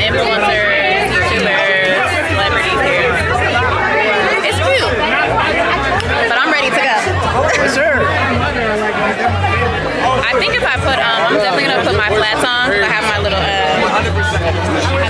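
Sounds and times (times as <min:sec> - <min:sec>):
music with deep bassline: 0:00.0 - 0:15.0
party chatter: 0:00.0 - 0:15.0.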